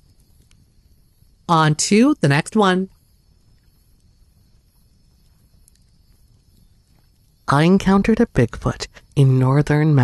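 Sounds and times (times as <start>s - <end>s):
soft ticks: 0.0s - 1.2s, 2.9s - 4.2s, 4.8s - 7.4s
faint low hum: 0.0s - 10.0s.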